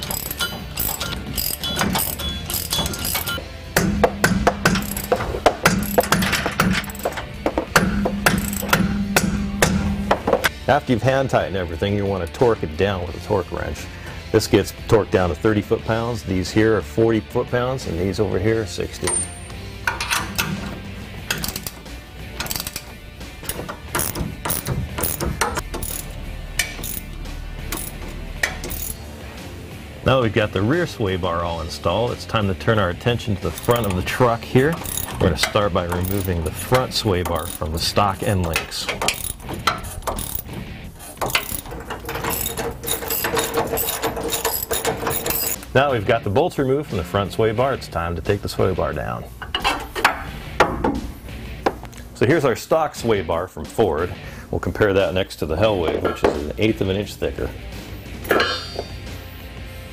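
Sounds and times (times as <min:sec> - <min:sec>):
hand ratchet clicking: 0:00.0 - 0:10.4, 0:19.0 - 0:29.0, 0:33.4 - 0:45.6.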